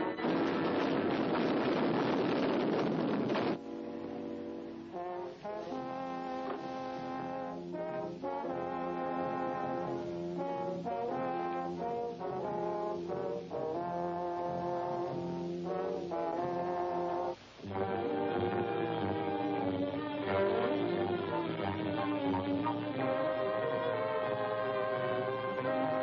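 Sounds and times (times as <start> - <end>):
orchestral brass music: 0.0 - 26.0.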